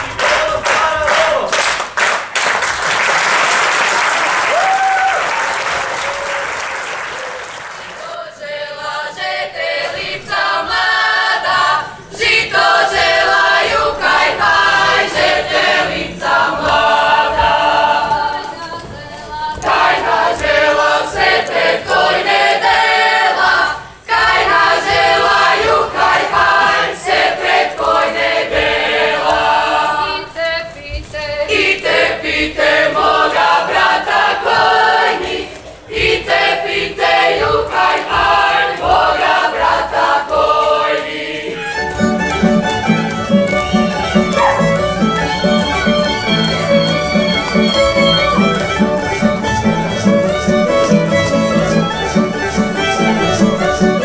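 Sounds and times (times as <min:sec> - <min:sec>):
audience applause: 0:00.0 - 0:08.2
group singing unaccompanied: 0:07.8 - 0:54.0.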